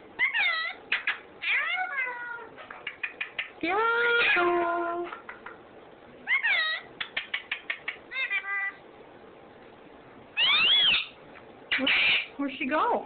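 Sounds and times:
parakeet squawking and calling: 0.2 - 4.6, 6.2 - 8.9, 10.4 - 12.4
parakeet clicks: 2.7 - 3.6, 7.0 - 8.0.

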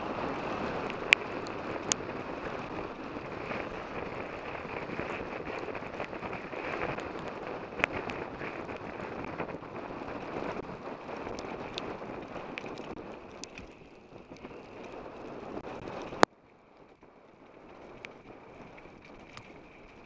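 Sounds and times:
bike tyre noise on gravel: 0.0 - 20.0
wind on microphone: 0.0 - 20.0.

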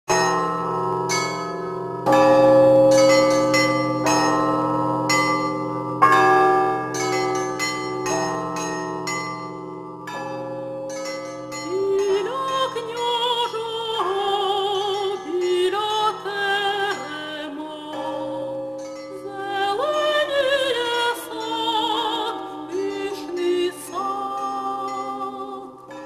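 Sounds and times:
church bells ringing: 0.1 - 26.0
person singing: 11.6 - 26.0.

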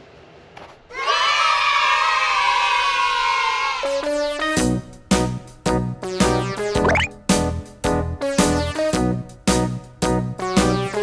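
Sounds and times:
children cheering: 0.9 - 3.9.

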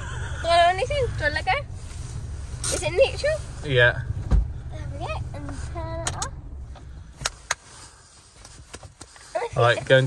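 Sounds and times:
truck engine rumble: 0.0 - 10.0.

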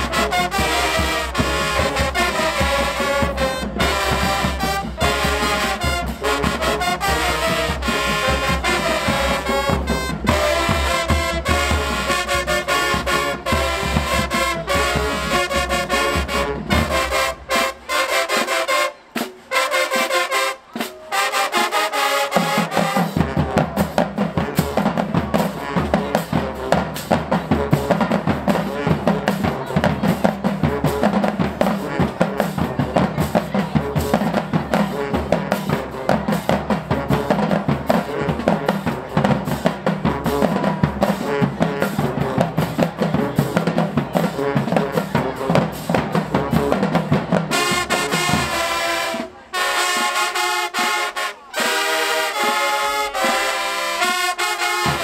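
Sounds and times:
brass chords: 0.0 - 55.0
snare and bass drum cadence: 0.0 - 55.0.

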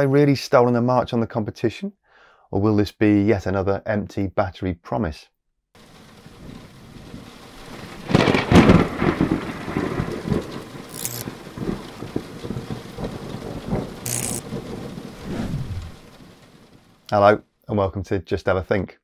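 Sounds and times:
rain: 5.8 - 17.4
rumbling thunder: 6.3 - 16.8
thunderclap: 6.4 - 16.8.

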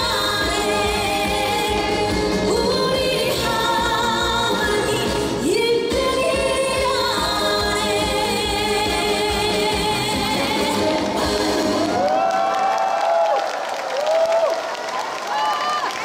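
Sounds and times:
woman singing with vibrato: 0.0 - 12.1
loud instrumental accompaniment: 0.0 - 12.3.

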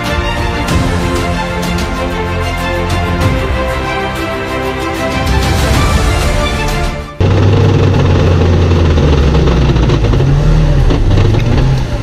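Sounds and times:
vehicle engine droning: 7.2 - 12.0.

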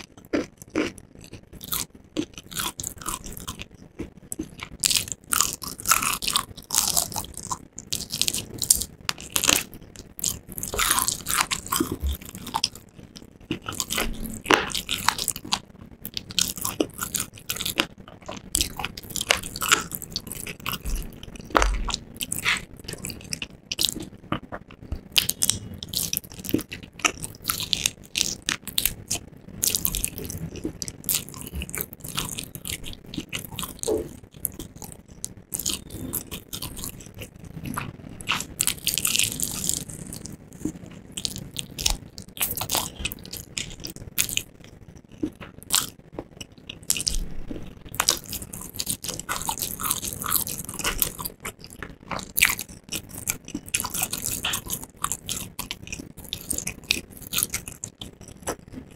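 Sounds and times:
crunchy chewing of fried chicken: 0.0 - 58.9.

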